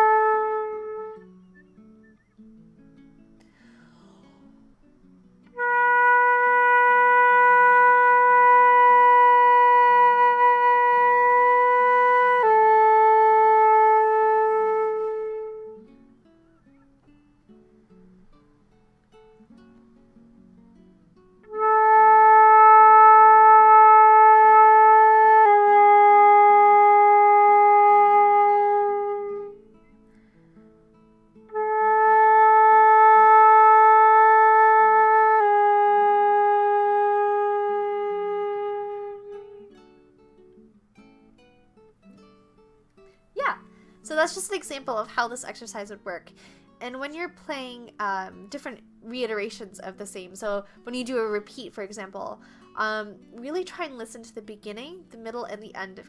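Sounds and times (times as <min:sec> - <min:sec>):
flute playing long tones: 0:00.0 - 0:02.3, 0:05.6 - 0:15.8, 0:21.5 - 0:29.6, 0:31.5 - 0:39.8.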